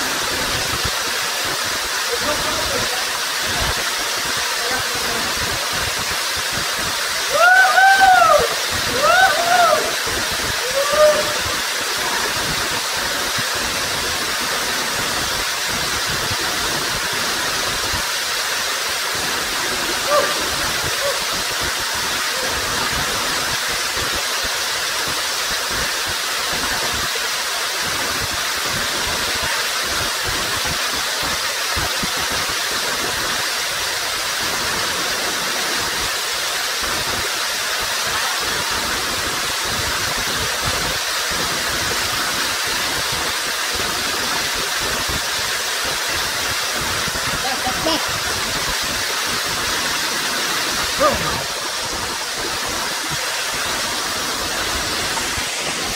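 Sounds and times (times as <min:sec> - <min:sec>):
waterfall roar: 0:00.0 - 0:55.9.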